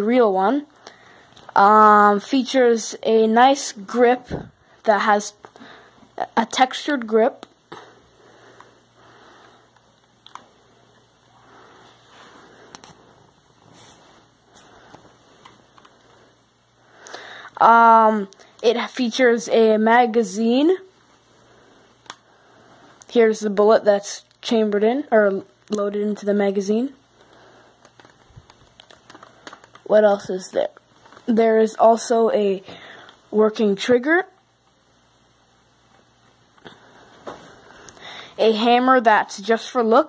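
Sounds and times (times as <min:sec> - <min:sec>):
soft rustling: 0:08.2 - 0:16.4.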